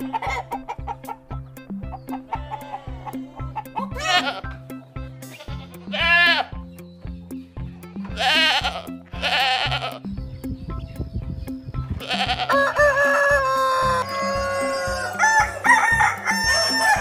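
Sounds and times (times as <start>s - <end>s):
background music with beat: 0.0s - 17.0s
goat bleating: 2.2s - 4.6s, 5.2s - 6.7s, 8.0s - 10.1s, 12.0s - 12.6s.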